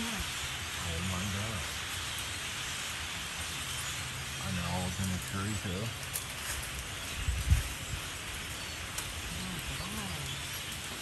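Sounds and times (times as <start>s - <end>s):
huge flock of birds hissing: 0.0s - 11.0s.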